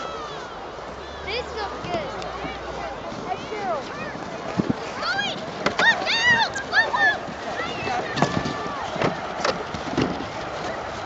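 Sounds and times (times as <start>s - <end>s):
steady outdoor noise: 0.0s - 11.0s.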